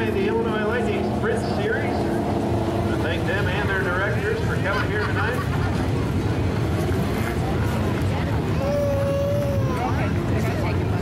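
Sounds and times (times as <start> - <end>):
people talking: 0.0 - 2.1, 2.9 - 5.9, 7.1 - 11.0
race car engine running: 0.0 - 8.6.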